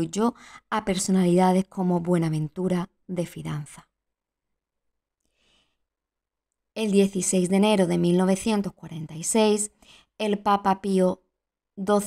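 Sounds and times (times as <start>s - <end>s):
woman breathing in: 5.2s - 5.9s, 9.8s - 10.2s.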